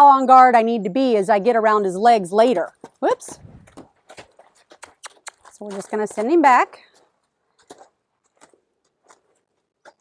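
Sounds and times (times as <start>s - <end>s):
footfalls on gravel: 2.6s - 10.0s.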